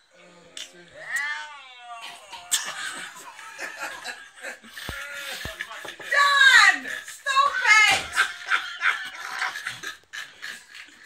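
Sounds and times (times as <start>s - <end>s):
laughter: 2.4s - 11.0s.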